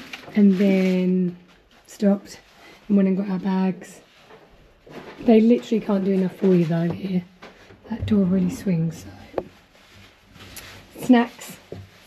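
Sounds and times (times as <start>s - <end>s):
faint rustling: 0.0s - 12.0s.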